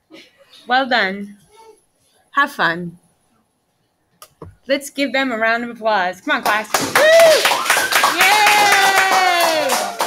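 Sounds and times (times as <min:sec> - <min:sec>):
hand clapping: 0:06.4 - 0:10.0
person cheering: 0:06.9 - 0:10.0.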